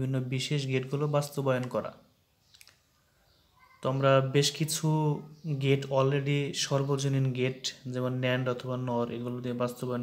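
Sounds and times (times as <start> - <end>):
man speaking: 0.0 - 2.1, 3.8 - 10.0.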